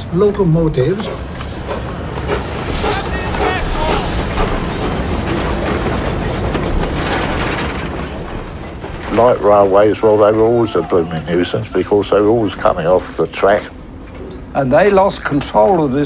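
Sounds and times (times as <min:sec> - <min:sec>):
train wagons clattering on track: 0:00.0 - 0:16.0.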